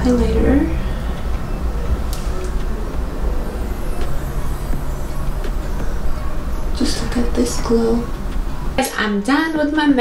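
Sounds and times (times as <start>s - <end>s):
low rumble: 0.0s - 8.8s.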